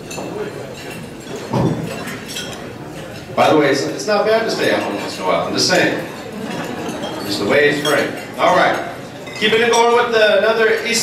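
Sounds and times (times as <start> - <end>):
glasses and silverware clinking: 0.0 - 11.0
murmur of voices: 0.0 - 11.0.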